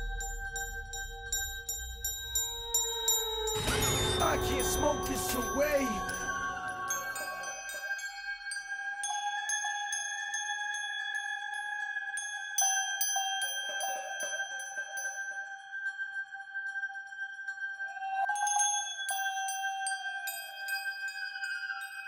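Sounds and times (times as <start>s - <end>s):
sustained electronic tone: 3.6s - 7.8s.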